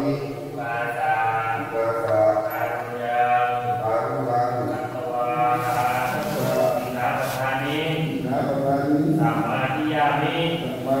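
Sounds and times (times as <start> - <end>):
monks chanting: 0.0 - 11.0.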